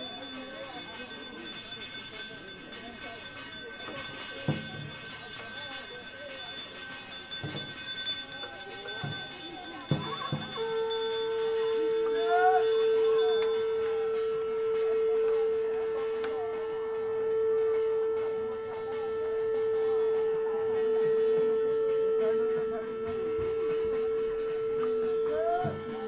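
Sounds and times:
faint voices: 0.0s - 26.0s
steady ringing tone: 0.0s - 26.0s.

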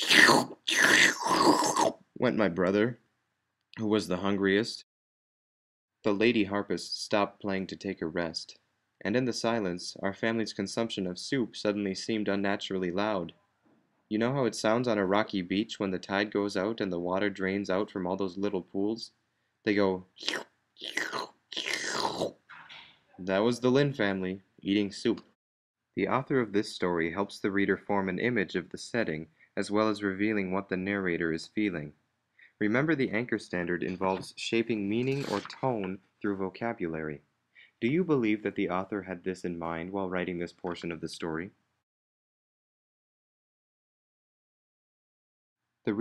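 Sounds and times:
person imitating slurping: 0.0s - 2.0s, 20.2s - 22.4s, 35.0s - 35.7s.

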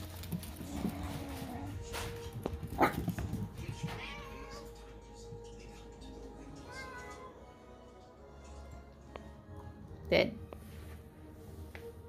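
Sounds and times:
cat meowing: 3.5s - 4.9s, 6.5s - 7.4s.

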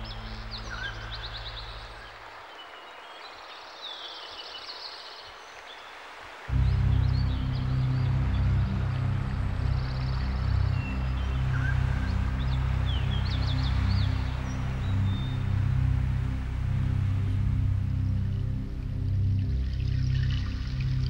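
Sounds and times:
ambient music with low drone: 0.0s - 3.2s, 6.4s - 21.0s
birds chirping: 0.0s - 21.0s.

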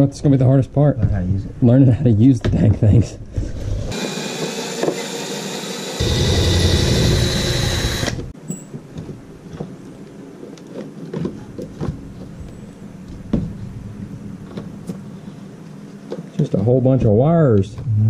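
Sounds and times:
cordless drill whining: 3.6s - 8.3s.

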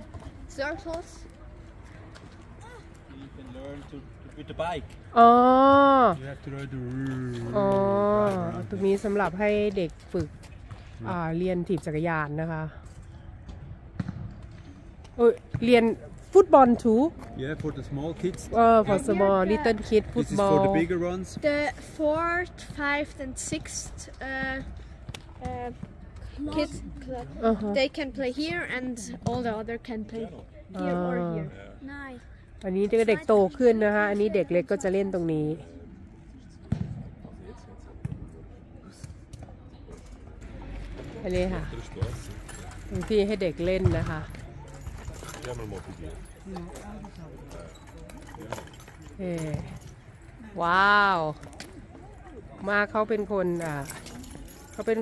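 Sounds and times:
football thuds: 36.7s - 37.2s, 43.6s - 44.3s.

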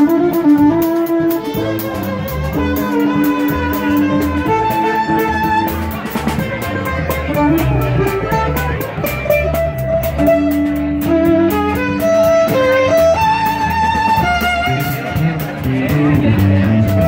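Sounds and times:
fiddle melody: 0.0s - 17.0s
live band playing fast tune: 0.0s - 17.0s.

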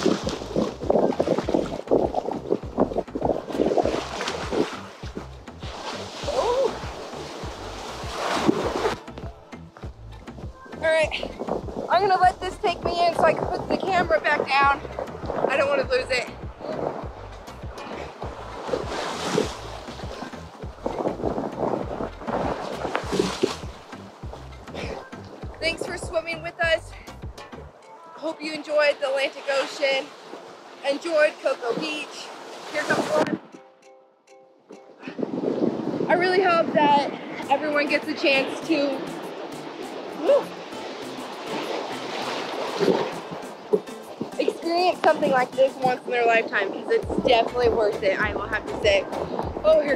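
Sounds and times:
ocean surf rushing and splashing: 0.0s - 9.6s, 10.4s - 27.2s, 27.9s - 33.6s, 34.9s - 49.9s
background music: 0.1s - 30.1s, 36.1s - 49.9s.

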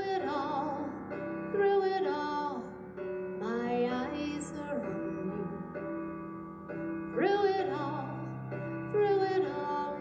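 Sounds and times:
woman singing into a microphone: 0.0s - 2.8s, 3.4s - 5.8s, 7.1s - 10.0s
instrumental backing chords: 0.0s - 10.0s.

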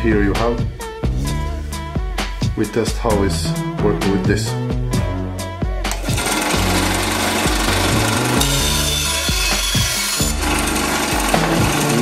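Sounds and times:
background music: 0.0s - 12.0s
band saw cutting wood: 5.9s - 12.0s.

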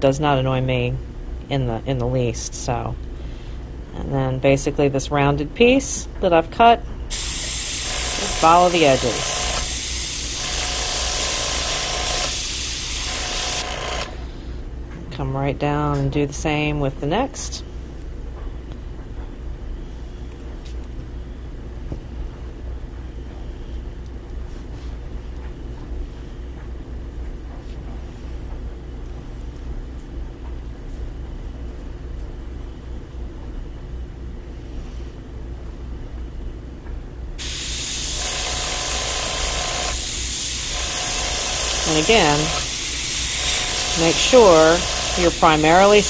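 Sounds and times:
airbrush spraying hiss: 7.1s - 10.6s, 11.2s - 13.6s, 37.4s - 46.0s.

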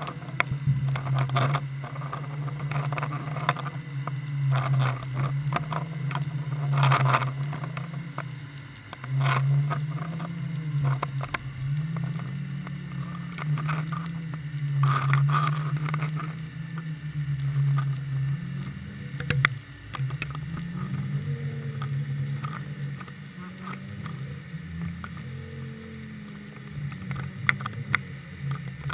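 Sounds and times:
low wavering underwater hum: 0.0s - 28.9s.

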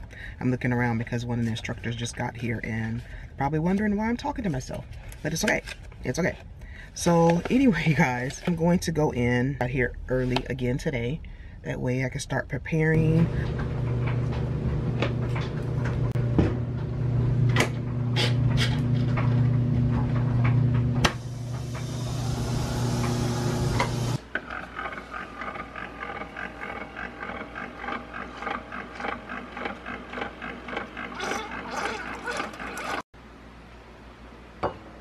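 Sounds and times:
coffee maker brewing: 13.0s - 33.0s
washing machine motor hum: 13.0s - 33.0s
washing machine rushing hiss: 21.1s - 24.2s.

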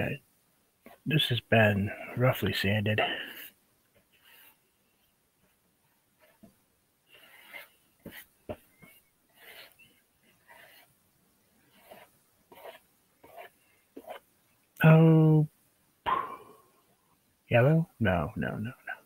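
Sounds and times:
brush scrubbing paint on canvas: 3.2s - 14.5s.

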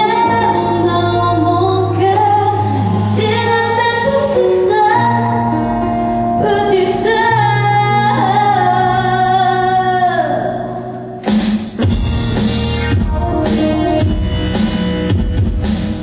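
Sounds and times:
woman singing: 0.0s - 5.6s, 6.4s - 10.9s, 13.0s - 14.4s
band accompaniment: 11.2s - 16.0s.

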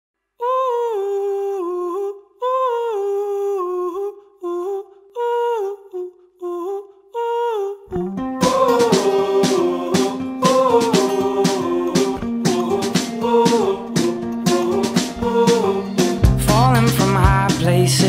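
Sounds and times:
person humming a wordless melody: 0.4s - 18.0s.

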